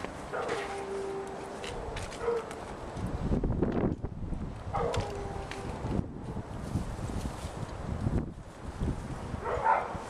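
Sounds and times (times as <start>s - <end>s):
dog barking: 0.3s - 0.8s, 2.2s - 2.6s, 4.7s - 5.1s, 9.4s - 10.0s.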